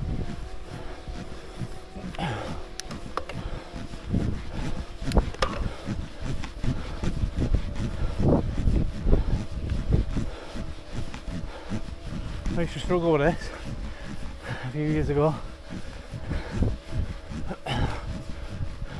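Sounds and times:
wind rumbling on microphone: 0.0 - 18.9.

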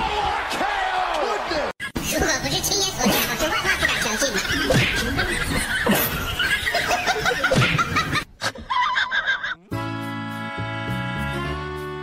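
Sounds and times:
person laughing: 3.0 - 9.7.

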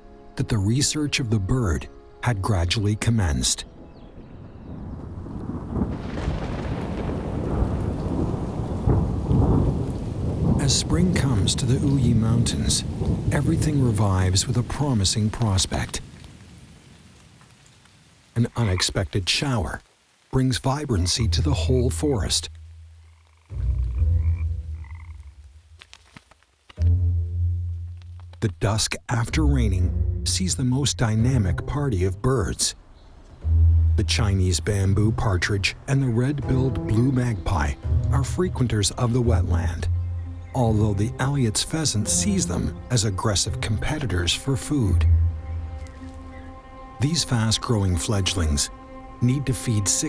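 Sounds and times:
thunder rumbling: 4.1 - 17.2
steady rain: 4.1 - 50.0
frogs croaking: 16.8 - 19.2, 21.0 - 26.8
faint higher frog calls: 22.7 - 25.6.

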